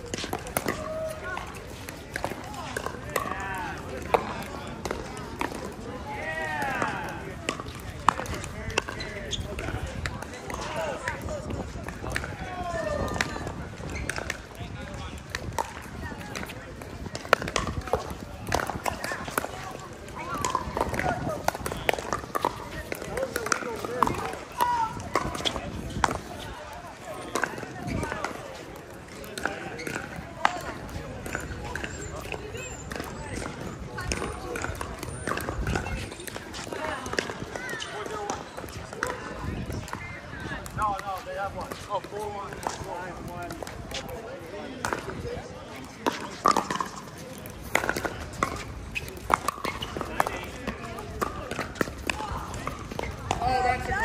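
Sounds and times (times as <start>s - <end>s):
paddles hitting plastic ball: 0.0s - 45.2s, 45.8s - 54.0s.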